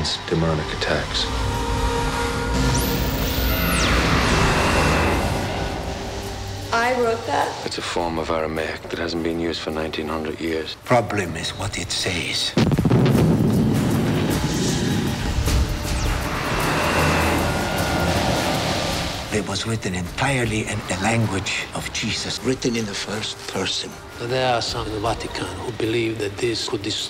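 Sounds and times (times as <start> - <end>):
film score music: 0.0 - 27.0
low rumble: 12.6 - 21.0
rushing whoosh: 12.6 - 21.8.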